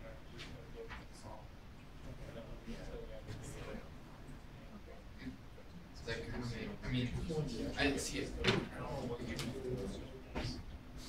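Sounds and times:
murmured talk: 0.0 - 11.0.

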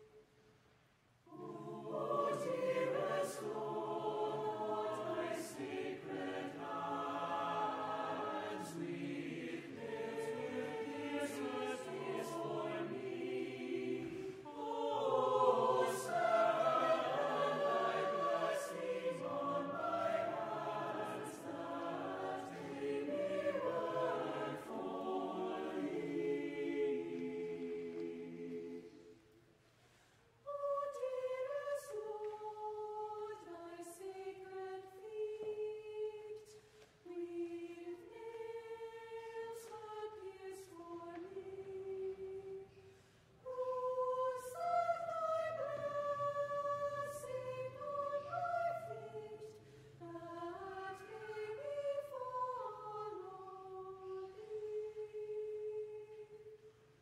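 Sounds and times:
choir singing in parts: 1.3 - 29.4, 30.4 - 57.0.

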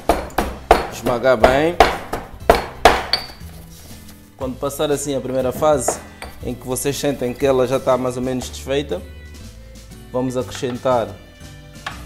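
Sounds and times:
stone pestle pounding in mortar: 0.0 - 3.4, 5.3 - 6.5.

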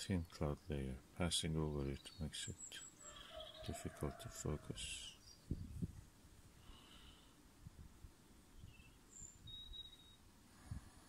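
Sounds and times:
faint high chirps: 8.5 - 10.3.

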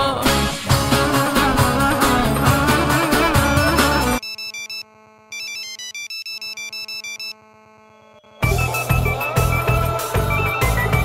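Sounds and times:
band music: 0.0 - 4.2, 8.4 - 11.0
electronic ringtone melody: 2.4 - 11.0.

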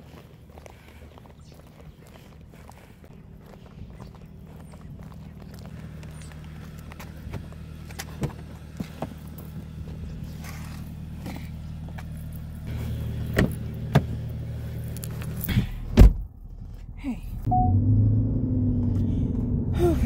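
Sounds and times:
footsteps: 0.0 - 13.6
steady low hum: 0.0 - 14.8
car door slamming: 15.9 - 16.3.

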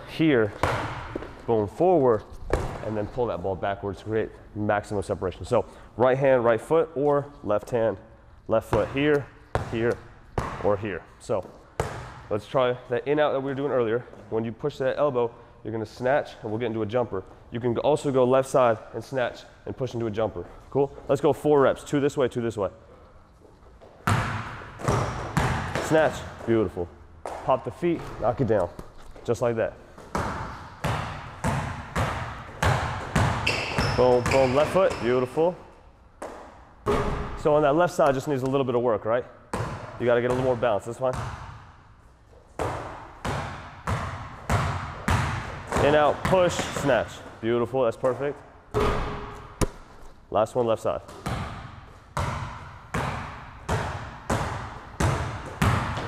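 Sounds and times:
basketball bouncing on gym floor: 0.4 - 1.5, 2.4 - 3.1, 8.6 - 12.4, 23.8 - 29.3, 29.9 - 35.4, 36.2 - 38.3, 39.5 - 41.8, 42.6 - 47.4, 48.0 - 49.9, 51.0 - 56.0
sneaker squeaking on floor: 23.4 - 26.5, 29.9 - 35.4.

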